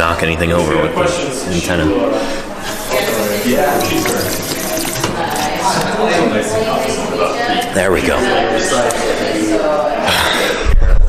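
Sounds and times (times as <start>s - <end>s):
drinking fountain water running: 2.3s - 7.2s
man drinking: 2.4s - 7.7s.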